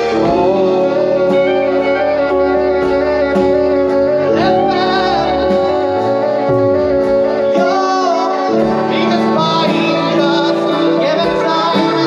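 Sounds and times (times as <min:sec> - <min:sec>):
bass: 0:00.0 - 0:12.0
drums: 0:00.0 - 0:12.0
electric guitar: 0:00.0 - 0:12.0
keyboard melody: 0:00.0 - 0:12.0.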